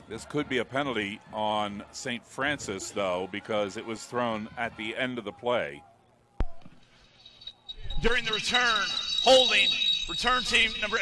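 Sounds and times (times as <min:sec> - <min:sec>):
steady high tone: 0:07.2 - 0:11.0.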